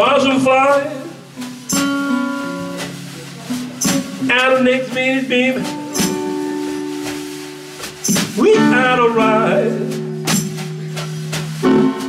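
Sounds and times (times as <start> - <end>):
slow blues guitar: 0.0 - 12.0
sharp drum hit: 5.6 - 7.2, 7.8 - 8.6, 9.9 - 12.0
person singing: 8.2 - 10.0.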